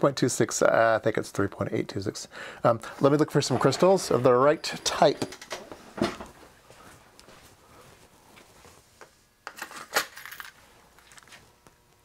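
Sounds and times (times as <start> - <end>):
small hard parts clinking and rattling: 9.5 - 11.3.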